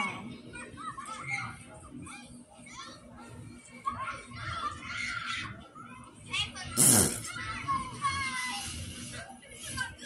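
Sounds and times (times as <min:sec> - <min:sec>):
children talking through phone speaker: 0:00.0 - 0:10.0.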